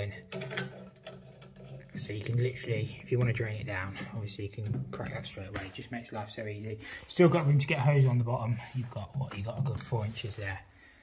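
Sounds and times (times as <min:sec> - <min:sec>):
metallic thread clicks and scrapes: 0:00.2 - 0:02.1.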